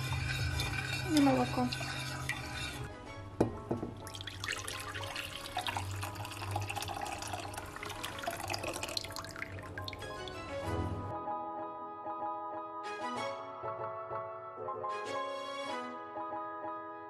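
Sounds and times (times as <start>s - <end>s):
liquid pouring into glass bowl: 0.0s - 2.9s, 4.0s - 10.6s
background music: 0.0s - 17.0s.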